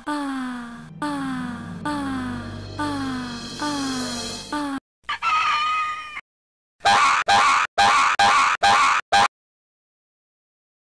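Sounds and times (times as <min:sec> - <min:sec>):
falling musical notes: 0:00.3 - 0:04.8.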